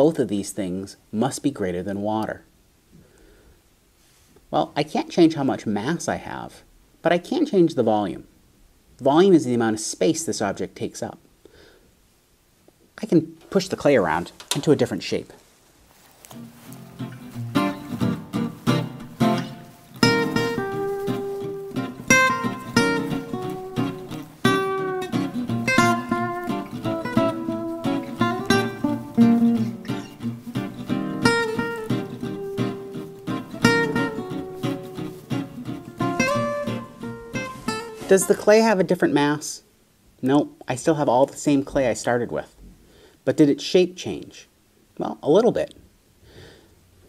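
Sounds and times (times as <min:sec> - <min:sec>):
acoustic guitar melody: 0:16.2 - 0:38.8.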